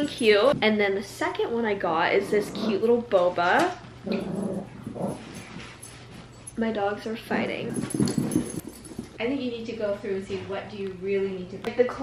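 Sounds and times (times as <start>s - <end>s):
small dogs growling: 2.1s - 3.1s, 4.0s - 5.7s.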